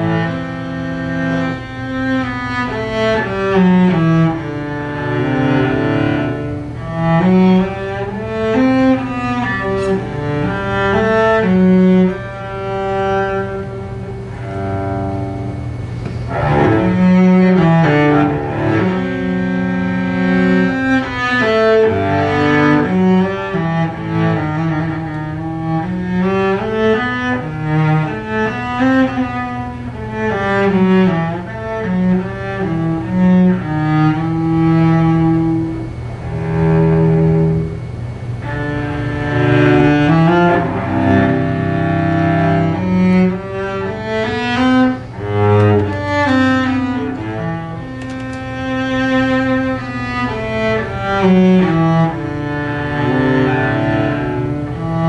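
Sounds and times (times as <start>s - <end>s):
bowed cello melody: 0.0s - 55.0s.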